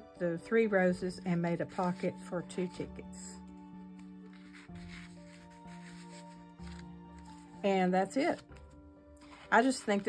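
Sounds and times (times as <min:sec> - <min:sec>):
soft background music: 0:00.0 - 0:10.0
paper tickets rustling: 0:04.3 - 0:10.0.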